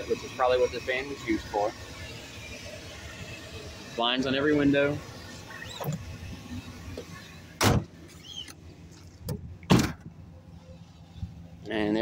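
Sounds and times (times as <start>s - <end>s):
loud thuds: 7.6s - 8.0s, 9.2s - 10.1s.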